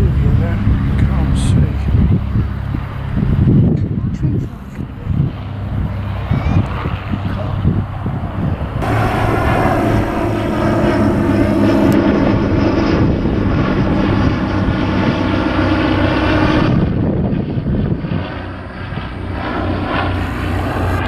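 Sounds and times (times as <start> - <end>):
propeller plane droning overhead: 0.0 - 21.0.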